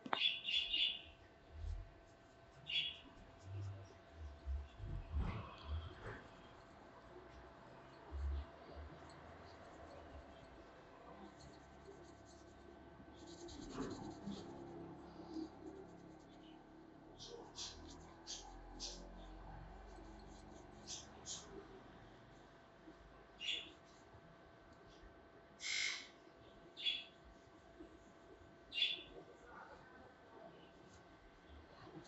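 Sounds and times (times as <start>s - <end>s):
bird chirping: 0.0s - 1.2s, 2.6s - 3.8s, 23.4s - 23.7s, 26.8s - 27.2s, 28.7s - 29.1s
fingers scratching through hair: 9.2s - 16.6s, 17.2s - 21.6s.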